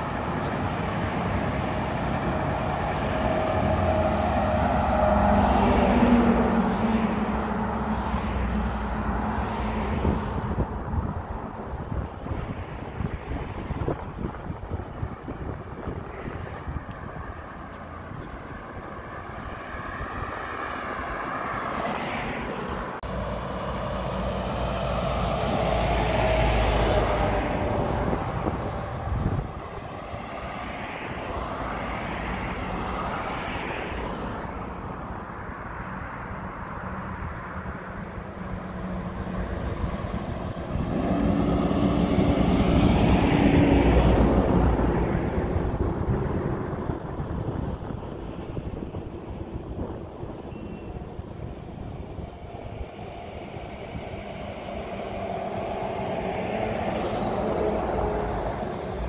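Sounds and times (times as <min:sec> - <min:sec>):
cars driving past: 0:00.0 - 0:59.0.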